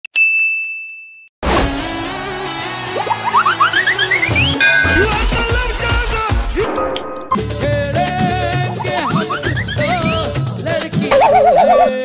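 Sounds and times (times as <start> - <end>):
music: 1.4 - 12.0.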